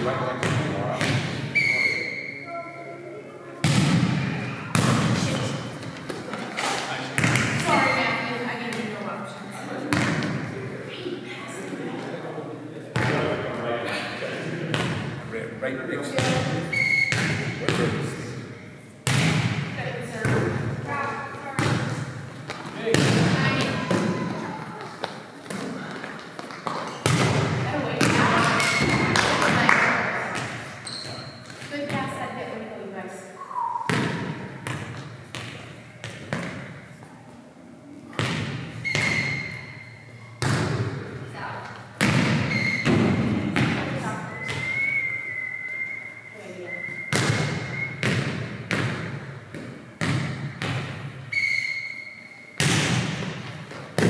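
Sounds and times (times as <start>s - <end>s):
volleyball thudding on gym floor: 3.6s - 5.5s, 7.2s - 7.9s, 9.9s - 10.4s, 16.2s - 18.0s, 19.0s - 20.7s, 21.6s - 24.4s, 26.6s - 31.3s, 38.1s - 39.5s, 40.4s - 41.0s, 42.0s - 44.7s, 47.1s - 51.1s, 52.6s - 54.0s.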